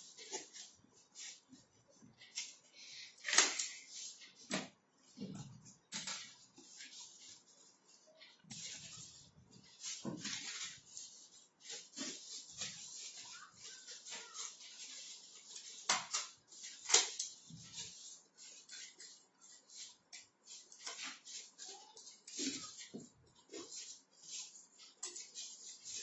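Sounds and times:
cardboard pieces rustling: 2.2 - 26.0.

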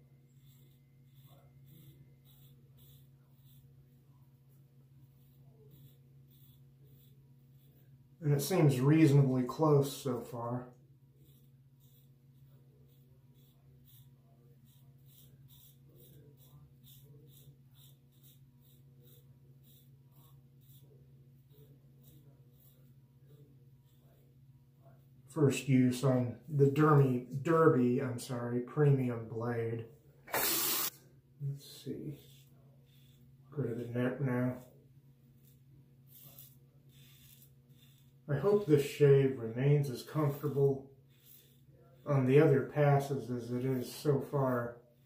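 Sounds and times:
razor scraping stubble: 0.0 - 10.5, 11.1 - 27.2, 30.3 - 31.0, 31.6 - 45.0
steady low hum: 0.0 - 45.0.

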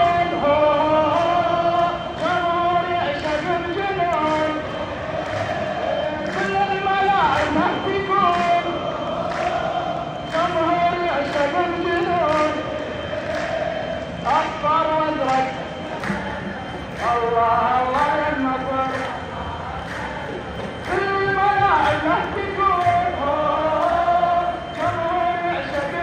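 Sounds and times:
chant leader on microphone: 0.0 - 26.0
crowd chanting: 0.0 - 26.0.

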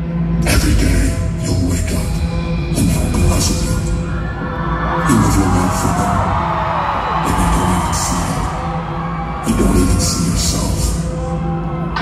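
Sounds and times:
crowd screaming and cheering: 1.8 - 12.0.

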